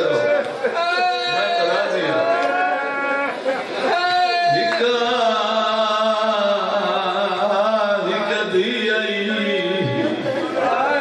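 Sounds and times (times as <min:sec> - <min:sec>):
man chanting into a microphone: 0:03.9 - 0:11.0.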